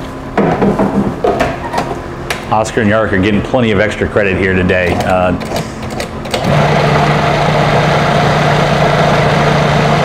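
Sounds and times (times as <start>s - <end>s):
food processor motor running: 6.4s - 10.0s.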